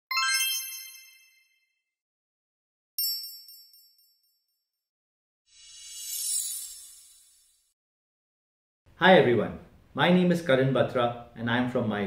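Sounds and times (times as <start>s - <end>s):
bright bell-like chime: 0.1s - 1.8s, 3.0s - 4.8s.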